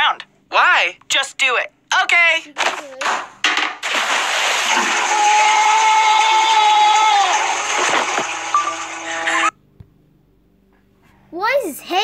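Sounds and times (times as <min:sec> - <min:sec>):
toilet flushing: 0:03.8 - 0:09.5
long held cry: 0:04.9 - 0:07.8.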